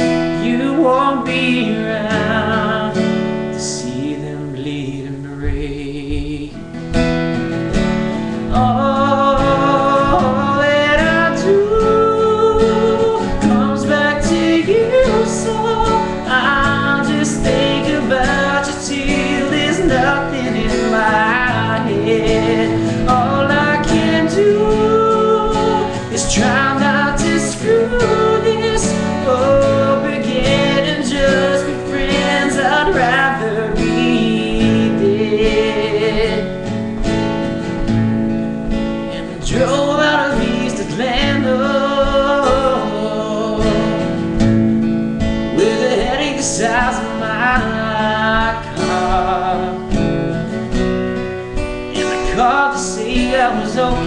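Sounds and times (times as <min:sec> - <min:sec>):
man singing: 0:00.0 - 0:50.8, 0:51.4 - 0:54.0
strummed acoustic guitar: 0:00.0 - 0:54.0.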